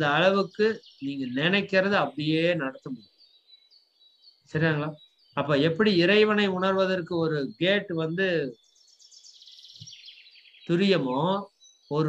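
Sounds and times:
man's voice: 0:00.0 - 0:03.0, 0:04.6 - 0:08.5, 0:10.7 - 0:12.0
small bird chirping: 0:00.0 - 0:12.0.

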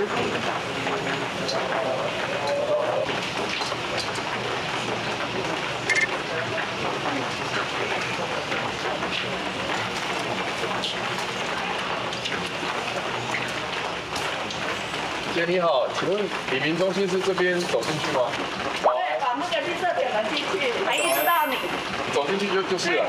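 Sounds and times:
rain on a wet street: 0:00.0 - 0:23.0.

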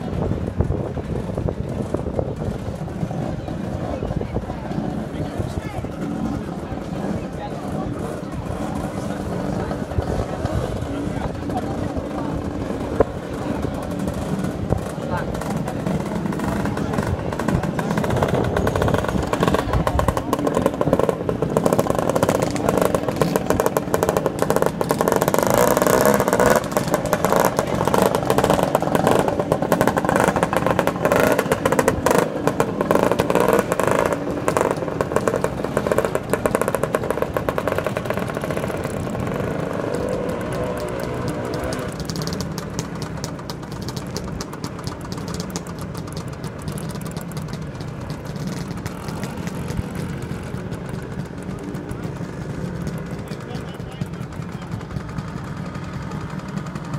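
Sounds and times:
scooter engines revving: 0:00.0 - 0:56.9.

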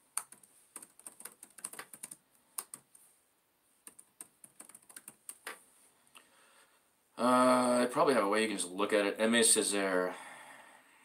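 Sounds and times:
keyboard typing: 0:00.1 - 0:03.0, 0:03.8 - 0:05.6.

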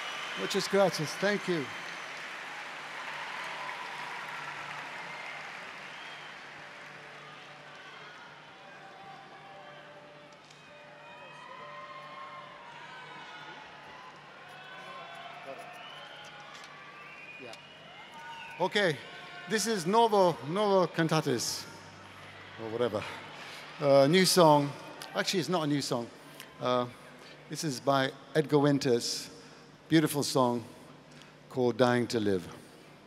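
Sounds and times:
crowd applauding and cheering: 0:00.0 - 0:27.0.

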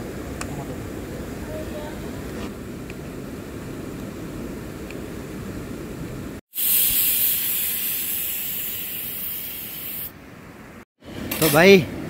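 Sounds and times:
loud steady hiss: 0:06.5 - 0:10.1.

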